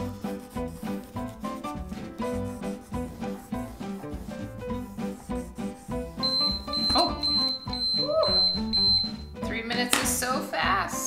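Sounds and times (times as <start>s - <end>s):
timer alarm beeping: 6.2s - 9.4s.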